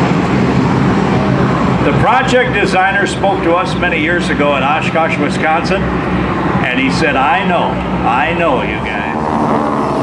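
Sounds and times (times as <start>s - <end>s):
jet engine roar: 0.0s - 10.0s.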